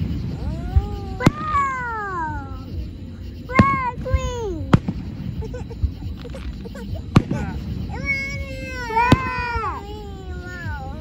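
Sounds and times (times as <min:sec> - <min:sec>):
firework bang: 0:00.0 - 0:02.0, 0:03.5 - 0:05.4, 0:06.1 - 0:08.4, 0:09.0 - 0:09.7.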